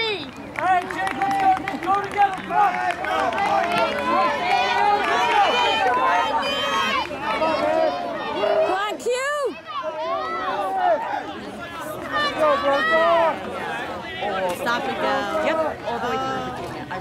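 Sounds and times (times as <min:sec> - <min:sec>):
spectators shouting: 0:00.0 - 0:16.6.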